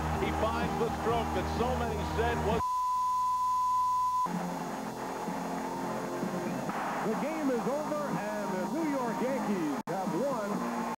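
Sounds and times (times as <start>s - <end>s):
background music: 0.0s - 2.6s, 4.0s - 11.0s.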